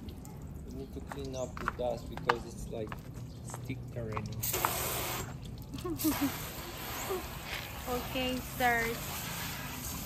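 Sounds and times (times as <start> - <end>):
water spraying onto car: 3.7 - 10.0
person laughing: 5.7 - 7.4.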